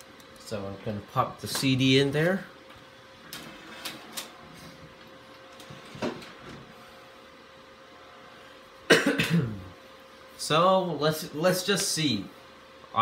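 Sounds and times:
computer humming: 0:00.0 - 0:13.0.

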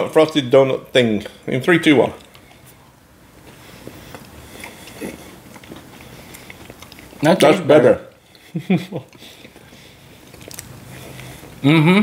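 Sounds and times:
people chewing and crunching: 0:02.1 - 0:12.0.

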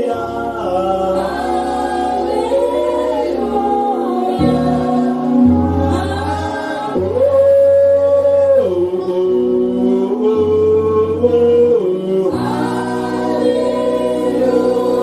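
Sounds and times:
congregation singing slow worship song: 0:00.0 - 0:15.0.

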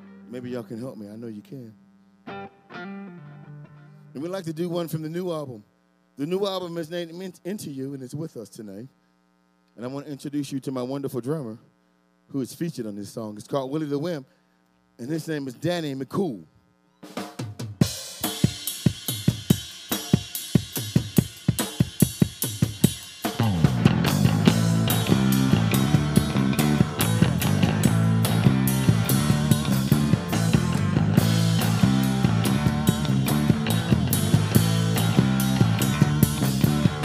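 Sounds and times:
electric guitar: 0:00.0 - 0:00.4, 0:01.8 - 0:04.2, 0:18.0 - 0:37.0
drum kit playing: 0:17.0 - 0:37.0
electric bass: 0:22.5 - 0:37.0.

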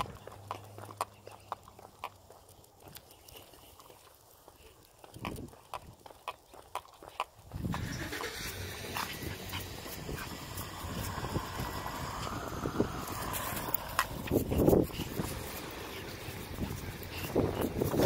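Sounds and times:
dog claws clicking on concrete: 0:00.0 - 0:07.8, 0:08.8 - 0:18.0
steady rushing noise: 0:08.8 - 0:18.0.

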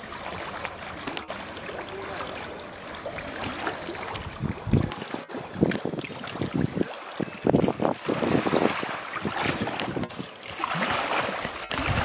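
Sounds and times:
water splashing and sloshing: 0:00.0 - 0:12.0.

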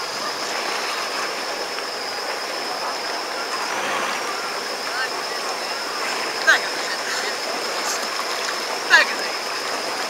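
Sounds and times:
thin high whine: 0:00.0 - 0:10.0
water rushing and splashing: 0:00.0 - 0:10.0.

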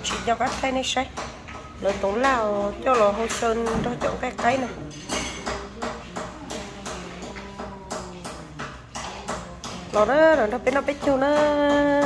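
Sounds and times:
dishes and spoons tapping: 0:00.0 - 0:12.0
faint voices: 0:02.4 - 0:12.0.

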